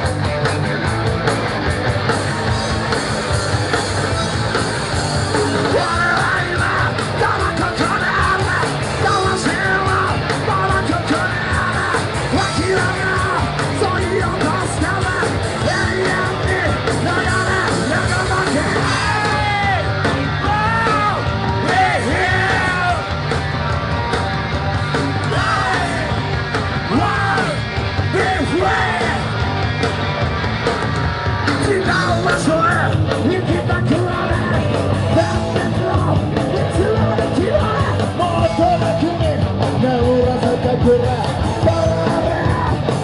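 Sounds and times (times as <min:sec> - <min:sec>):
live punk band: 0:00.0 - 0:43.0
shouted vocals: 0:05.4 - 0:29.6, 0:31.3 - 0:43.0.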